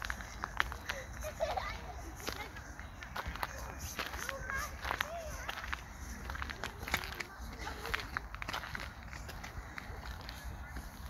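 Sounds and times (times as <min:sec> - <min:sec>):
faint voices: 0:00.0 - 0:11.0
footsteps walking: 0:00.0 - 0:11.0.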